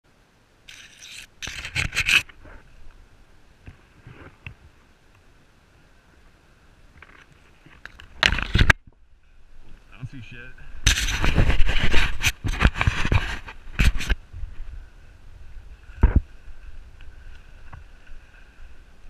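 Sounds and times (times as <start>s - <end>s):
branches and leaves scraping: 0.7s - 19.0s.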